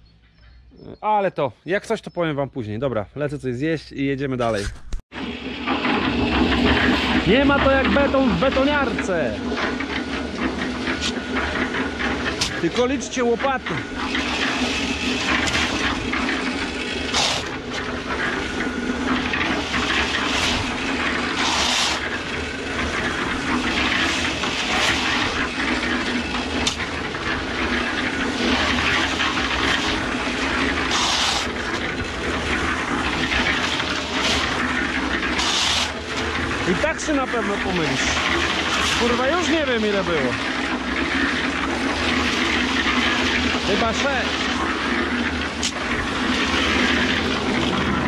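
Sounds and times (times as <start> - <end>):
concrete mixer humming: 5.1 - 48.0
shovel scraping gravel: 5.8 - 48.0.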